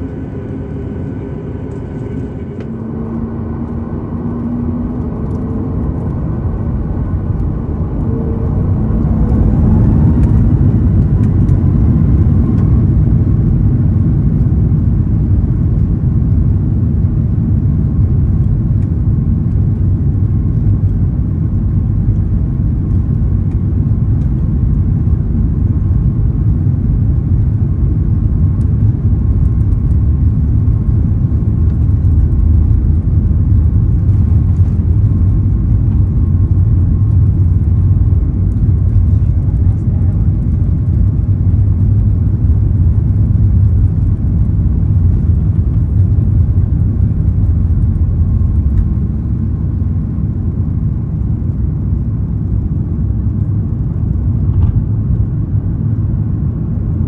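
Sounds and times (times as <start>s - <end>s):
jet engines spooling up: 0.0s - 6.4s
takeoff roll rumble: 0.0s - 57.0s.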